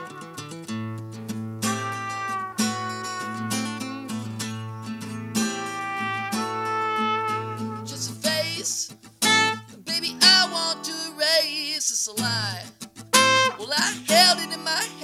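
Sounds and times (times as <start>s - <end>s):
acoustic guitar strumming: 0.0s - 15.0s
trumpet long held notes: 1.7s - 4.2s, 5.7s - 8.0s, 13.2s - 13.7s
man singing: 7.7s - 9.0s, 9.8s - 15.0s.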